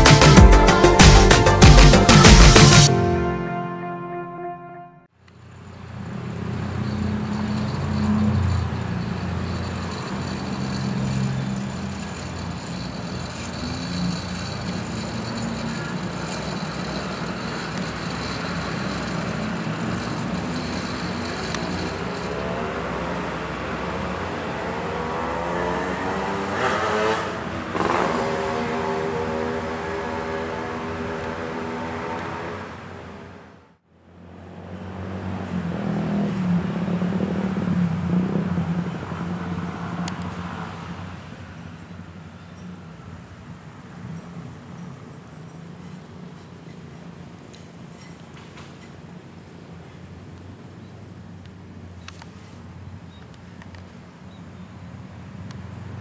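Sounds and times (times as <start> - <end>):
vehicle engines passing: 0.0 - 56.0
engine accelerating: 13.6 - 32.2.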